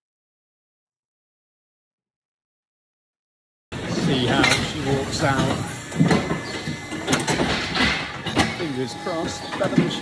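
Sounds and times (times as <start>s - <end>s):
metal gate clanking: 4.0s - 10.0s
metal gate scraping: 4.0s - 10.0s.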